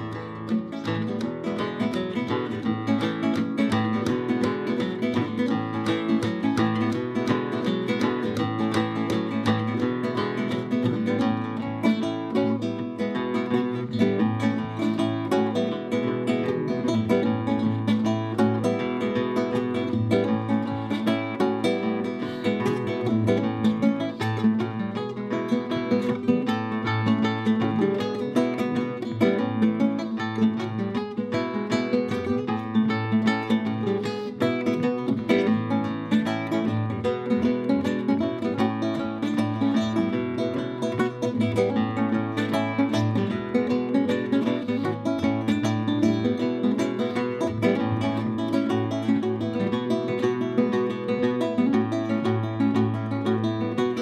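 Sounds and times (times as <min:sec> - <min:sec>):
flamenco guitar plucking: 0:00.0 - 0:54.0.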